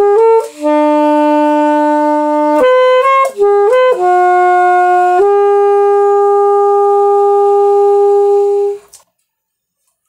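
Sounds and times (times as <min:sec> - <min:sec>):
alto saxophone long note: 0:00.0 - 0:08.9.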